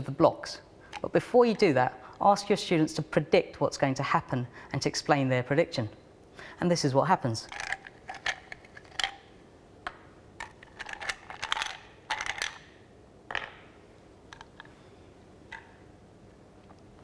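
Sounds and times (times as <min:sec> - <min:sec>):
ice cubes clinking: 0:07.4 - 0:09.2, 0:10.4 - 0:12.7.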